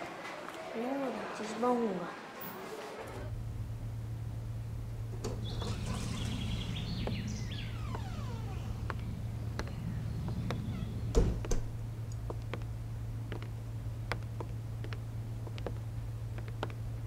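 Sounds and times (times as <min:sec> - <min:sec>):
steady low hum: 0:03.1 - 0:17.0
door squeaking: 0:05.2 - 0:11.9
door shutting thumps: 0:05.2 - 0:12.6
footsteps on hard floor: 0:08.8 - 0:12.7, 0:13.3 - 0:16.8.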